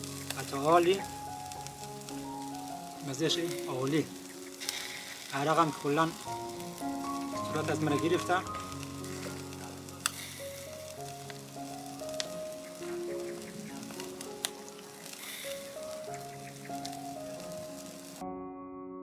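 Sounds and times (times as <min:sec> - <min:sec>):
chicken sizzling on a grill: 0:00.0 - 0:18.2
sharp crackles: 0:00.0 - 0:18.2
background music: 0:00.0 - 0:19.0.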